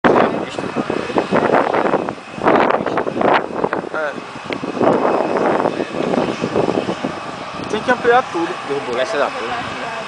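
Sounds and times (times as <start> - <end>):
indistinct talking: 7.5 - 10.0.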